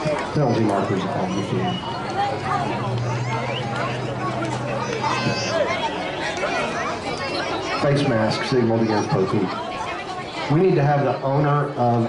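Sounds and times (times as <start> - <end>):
spectators chattering: 0.0 - 12.0.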